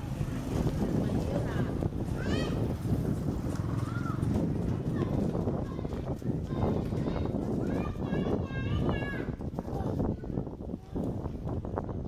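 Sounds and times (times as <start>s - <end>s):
people talking: 0.0s - 3.0s, 3.6s - 11.5s
wind and road noise: 0.0s - 12.0s.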